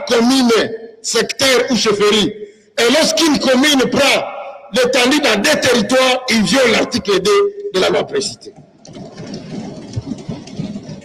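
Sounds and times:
assembly hall background noise: 0.0 - 11.0.

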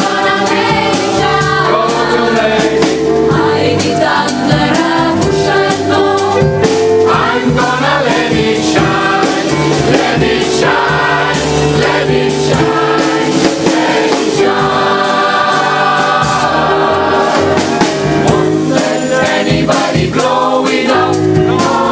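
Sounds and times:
gospel choir singing: 0.0 - 21.9
sharp regular beat: 0.0 - 21.9.

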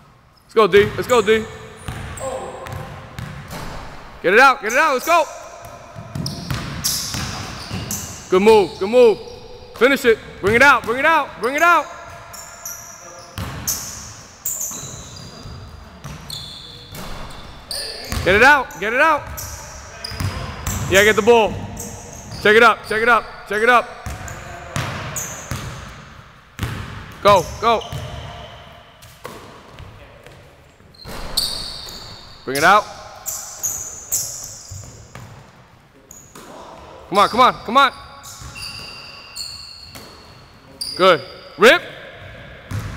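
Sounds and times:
sneaker squeaks: 0.3 - 4.0, 4.6 - 35.5, 36.1 - 42.9
basketball bouncing on wooden floor: 1.8 - 4.0, 5.6 - 8.1, 24.0 - 25.8, 26.6 - 28.4.

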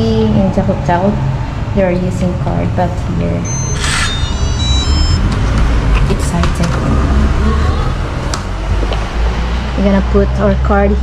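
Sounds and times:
door lock short high beeps: 3.5 - 5.3.

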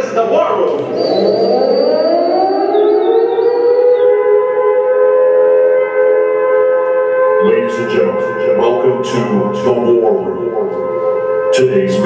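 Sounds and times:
air-raid siren wail: 0.0 - 11.6.

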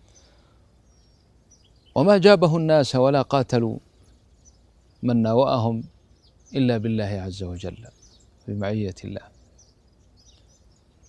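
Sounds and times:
faint bird chirps: 0.0 - 11.0
man speaking: 2.0 - 3.8, 5.0 - 5.9, 6.6 - 7.9, 8.5 - 9.3.

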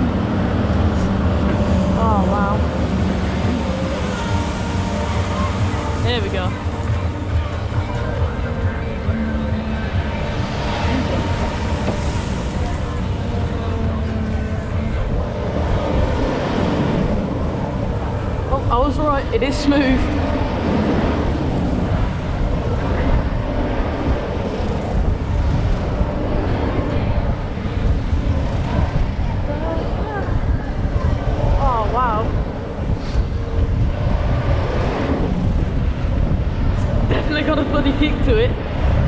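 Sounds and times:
wind rushing over microphone: 0.0 - 39.0.

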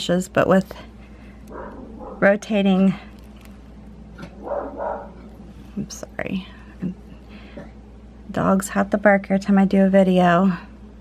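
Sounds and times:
dog barking: 1.5 - 2.3, 4.4 - 5.2.

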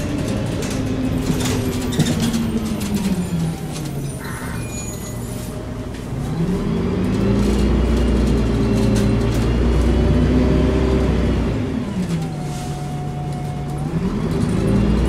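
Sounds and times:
bus diesel engine accelerating: 0.0 - 15.0.

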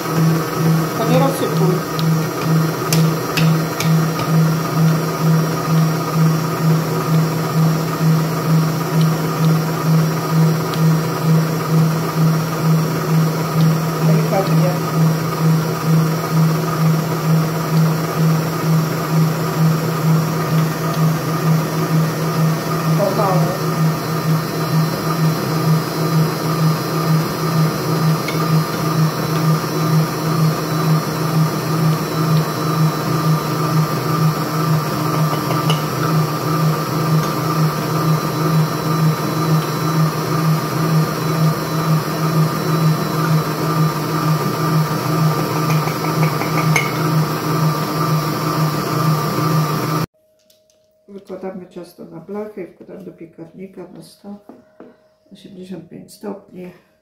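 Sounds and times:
electric stand mixer running: 0.0 - 50.1.

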